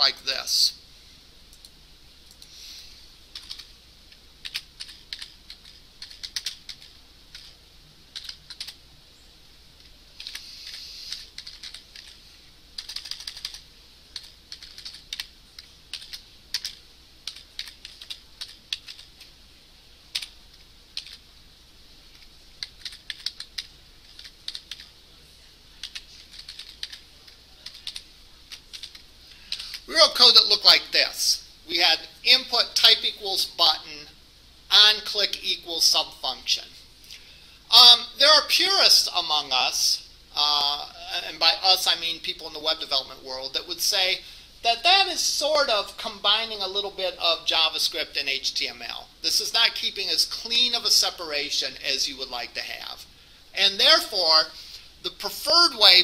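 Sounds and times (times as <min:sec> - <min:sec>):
computer keyboard typing: 0:03.3 - 0:03.7, 0:04.4 - 0:08.8, 0:10.2 - 0:12.2, 0:12.8 - 0:19.2, 0:20.1 - 0:20.3, 0:20.9 - 0:21.2, 0:22.1 - 0:24.9, 0:25.8 - 0:27.0, 0:27.6 - 0:29.8.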